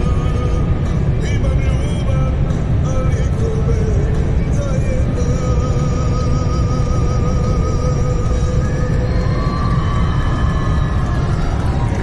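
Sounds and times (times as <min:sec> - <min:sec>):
road and wind rumble in car: 0:00.0 - 0:12.0.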